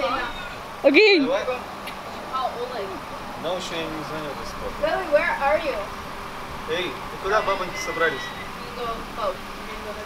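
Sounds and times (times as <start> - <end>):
people talking: 0.0 - 5.9, 6.7 - 10.0.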